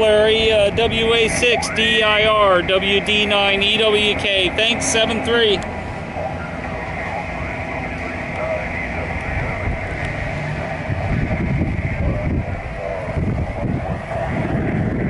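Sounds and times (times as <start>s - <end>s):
outdoor background rumble: 0.0s - 15.0s
faint indistinct voices: 5.6s - 10.8s.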